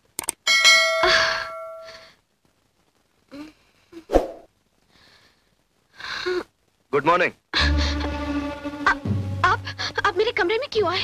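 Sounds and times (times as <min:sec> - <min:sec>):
bell ding: 0:00.5 - 0:01.9.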